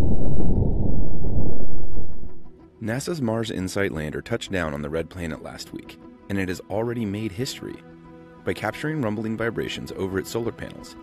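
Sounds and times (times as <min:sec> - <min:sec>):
low rumbling wind: 0:00.0 - 0:02.6.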